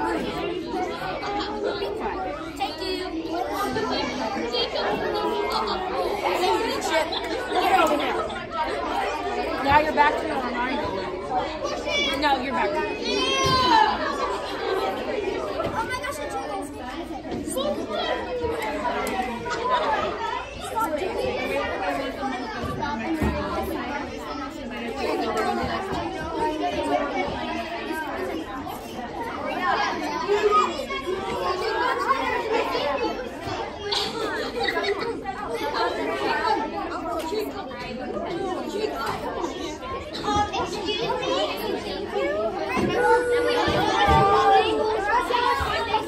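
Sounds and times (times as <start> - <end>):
children chattering: 0.0 - 46.0.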